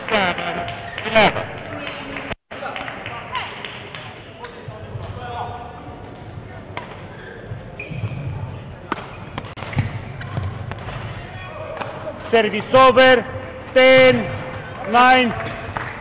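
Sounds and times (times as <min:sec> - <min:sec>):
rackets hitting shuttlecock: 0:06.1 - 0:07.1, 0:08.8 - 0:12.9.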